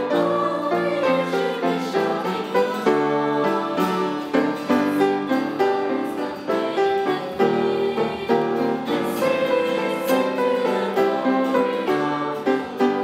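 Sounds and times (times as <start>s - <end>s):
piano accompaniment: 0.0s - 13.0s
small choir singing a hymn: 0.0s - 13.0s.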